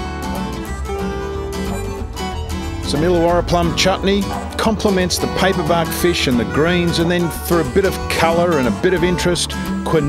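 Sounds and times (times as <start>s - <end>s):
plucked strings: 0.0s - 10.0s.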